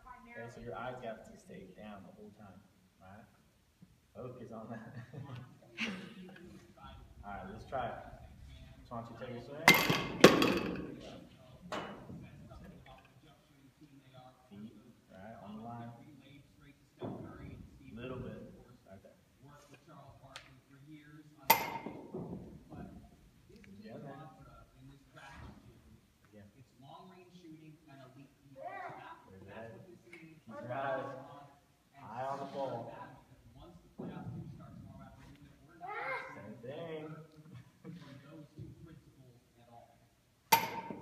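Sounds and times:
metal bat pinging ball: 21.5s - 22.3s, 40.5s - 41.0s.

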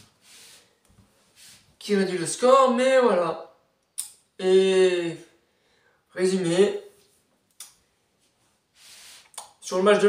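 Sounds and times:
short breath-like hiss: 8.8s - 9.4s.

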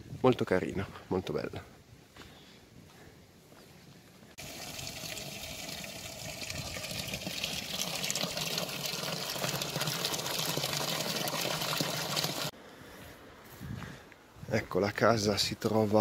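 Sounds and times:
water pouring into trough: 4.4s - 12.5s.

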